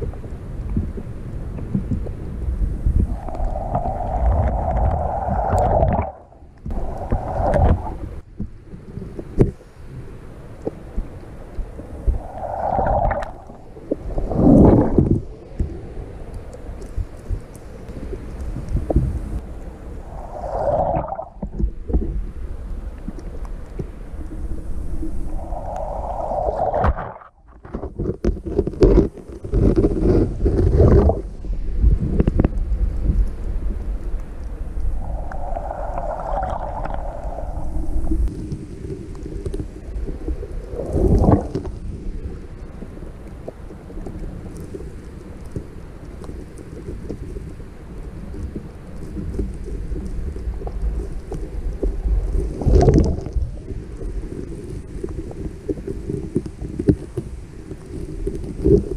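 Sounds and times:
underwater crackling: 0.0 - 9.8, 10.6 - 58.9
underwater rumble of moving water: 0.0 - 58.9.

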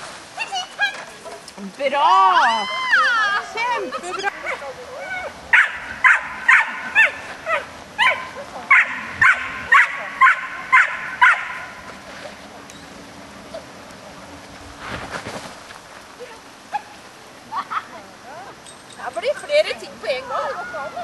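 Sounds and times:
dog barking: 5.5 - 11.7.

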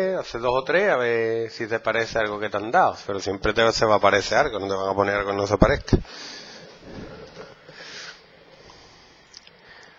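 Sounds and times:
person breathing noisily: 6.0 - 9.9.

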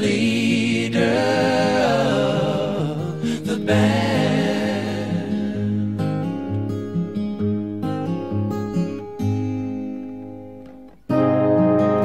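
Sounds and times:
acoustic guitar picking: 0.0 - 12.0
music with long held notes: 0.0 - 12.0.

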